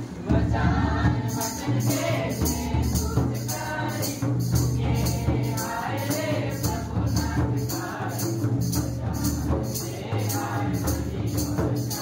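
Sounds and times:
group singing: 0.0 - 12.0
jingling percussion: 0.6 - 12.0.

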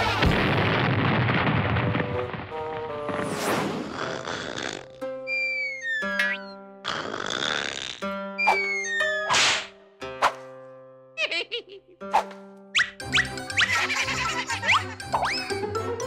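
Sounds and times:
cartoon snoring whistle: 3.9 - 6.2.

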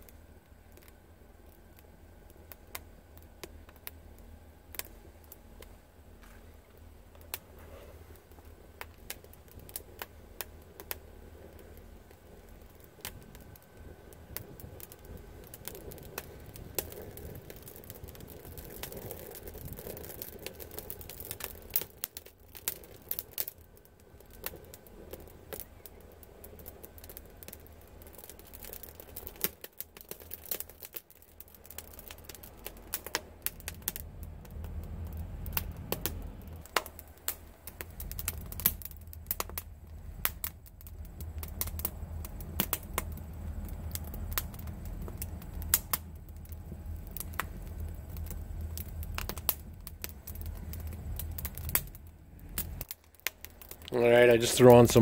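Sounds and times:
low fire rumble: 0.0 - 55.0
wood fire crackling and popping: 0.0 - 55.0.

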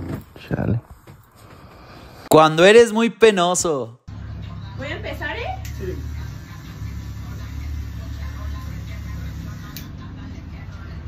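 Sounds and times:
electric hair clippers buzzing: 5.6 - 9.9.

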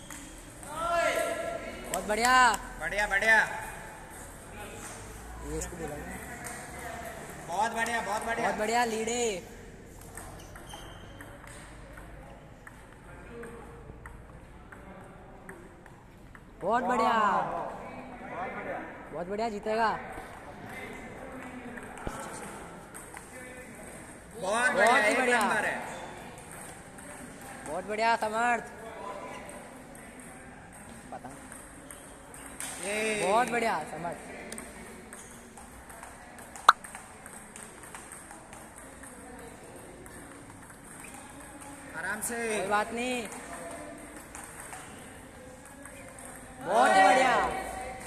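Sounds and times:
table tennis ball clicking: 34.5 - 41.8.

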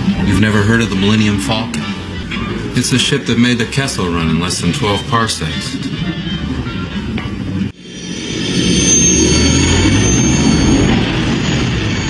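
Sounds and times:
background music: 0.0 - 10.9
spaceship engine rumble and whine: 5.4 - 12.0.

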